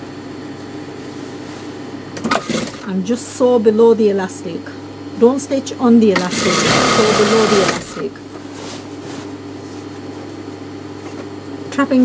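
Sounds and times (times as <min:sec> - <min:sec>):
sewing machine motor humming: 0:02.2 - 0:02.9, 0:06.0 - 0:08.2.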